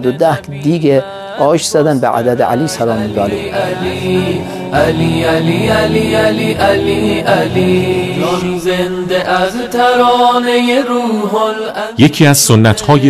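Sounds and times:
low musical accompaniment: 0:00.0 - 0:10.0
person chanting: 0:00.0 - 0:13.0.

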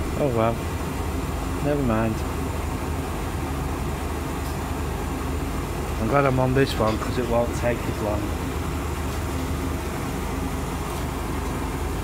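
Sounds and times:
bus engine drone: 0:00.0 - 0:12.0.

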